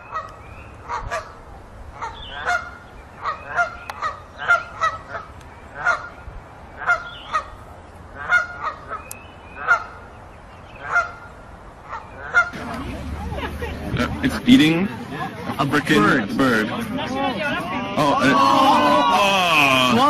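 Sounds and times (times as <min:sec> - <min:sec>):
geese honking: 0:00.0 - 0:06.2, 0:06.8 - 0:10.2, 0:10.8 - 0:14.8
faint low rumble: 0:11.8 - 0:14.7.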